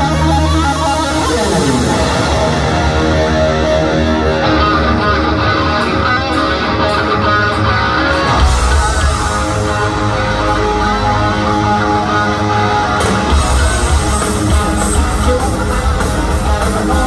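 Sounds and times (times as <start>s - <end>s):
heavy metal band playing live: 0.0s - 17.0s.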